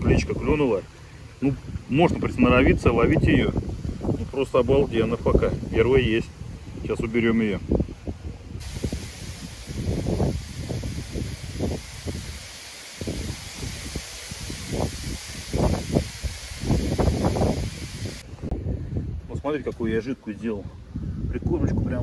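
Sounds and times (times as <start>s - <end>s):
wind rustling through reeds: 0.0s - 19.4s
wind gusts buffeting microphone: 1.4s - 22.0s.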